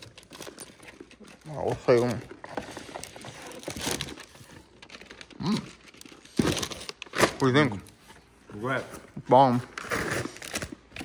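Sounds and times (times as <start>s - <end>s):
plastic packets crinkling: 0.0s - 7.8s.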